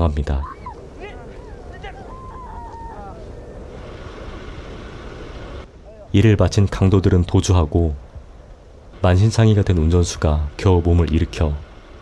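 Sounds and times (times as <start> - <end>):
low rumble and hiss: 0.0 - 12.0
woman's high wavering cry: 0.4 - 3.6.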